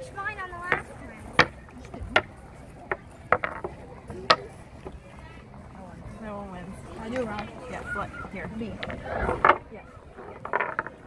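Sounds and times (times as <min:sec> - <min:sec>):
rocks clicking on wooden board: 0:02.9 - 0:05.0, 0:08.7 - 0:11.0.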